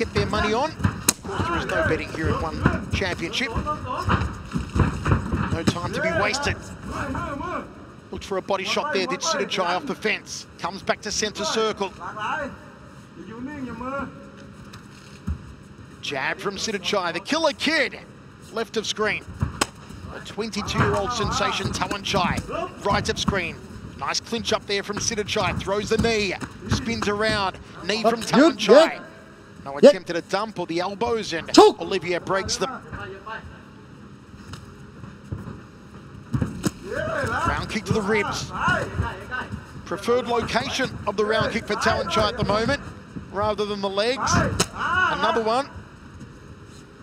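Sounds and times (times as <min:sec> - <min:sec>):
man speaking: 0:00.0 - 0:04.2, 0:05.5 - 0:12.6, 0:20.1 - 0:32.8, 0:37.1 - 0:42.8
low background noise: 0:00.0 - 0:47.0
quiet arena hum: 0:00.0 - 0:47.0.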